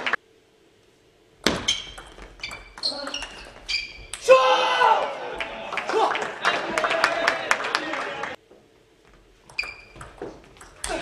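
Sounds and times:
shoe squeaks: 0:01.6 - 0:04.1, 0:09.5 - 0:10.2
person shouting: 0:04.2 - 0:06.2.

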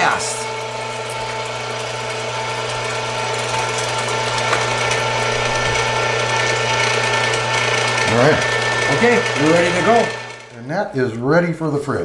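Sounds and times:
electric meat grinder motor whine: 0:00.0 - 0:10.6.

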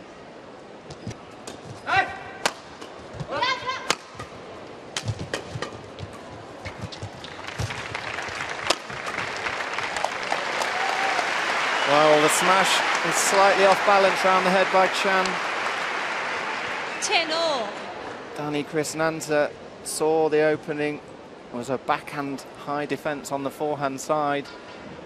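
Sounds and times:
court shoes squeaking: 0:00.8 - 0:01.9, 0:05.0 - 0:09.6
rackets striking shuttlecock: 0:03.8 - 0:07.0
crowd cheering and applause: 0:07.2 - 0:17.6.

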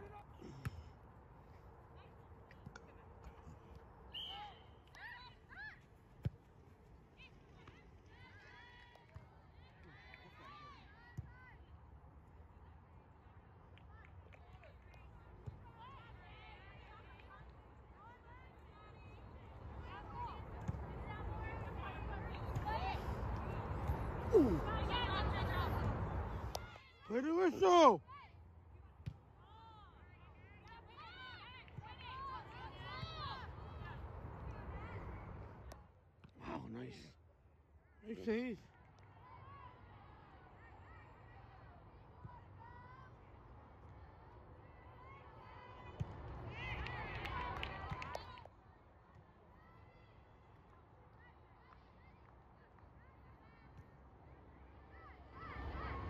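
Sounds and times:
distant shouts from soccer game: 0:02.9 - 0:06.0, 0:14.6 - 0:35.3, 0:53.0 - 0:56.0
distant shouts of players: 0:21.0 - 0:28.3.

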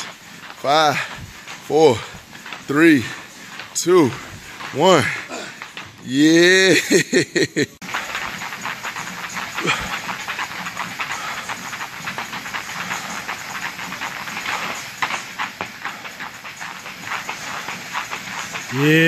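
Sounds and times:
battle ropes slapping a rubber floor: 0:00.0 - 0:19.0.

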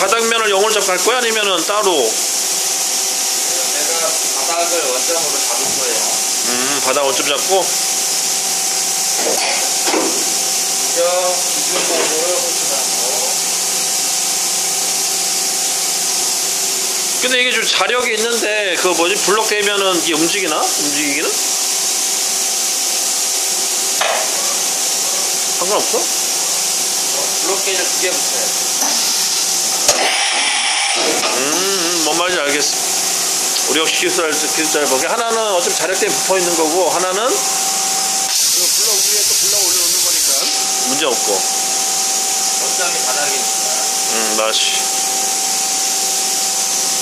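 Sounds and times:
machine hiss and hum: 0:00.0 - 0:47.0.

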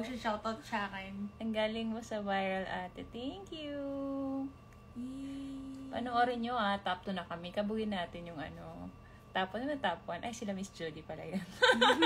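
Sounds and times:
woman humming: 0:04.2 - 0:06.0.

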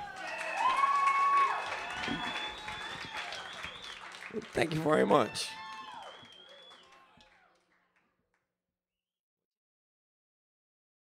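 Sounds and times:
light applause: 0:00.0 - 0:08.1.

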